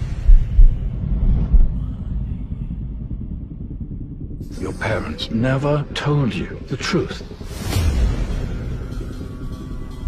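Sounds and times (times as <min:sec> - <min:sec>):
deep low rumble: 0:00.0 - 0:10.0.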